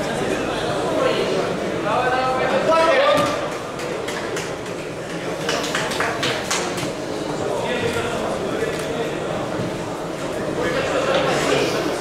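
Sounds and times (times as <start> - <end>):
sharp hand claps: 3.2 - 6.9.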